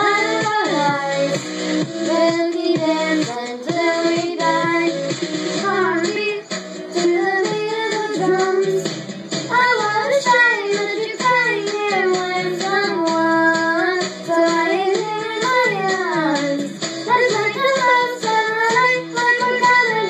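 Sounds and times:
girl singing into a microphone: 0:00.0 - 0:01.4, 0:02.1 - 0:05.0, 0:05.6 - 0:08.8, 0:09.5 - 0:20.0
pop backing track with beat: 0:00.0 - 0:20.0.

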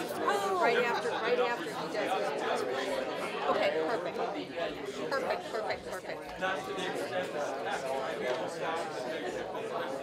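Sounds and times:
overlapping conversations: 0:00.0 - 0:10.0.

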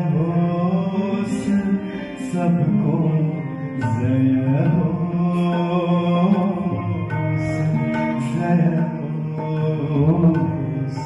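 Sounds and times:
harmonium: 0:00.0 - 0:11.0
violin: 0:00.0 - 0:11.0
tabla drum strokes: 0:03.5 - 0:11.0.

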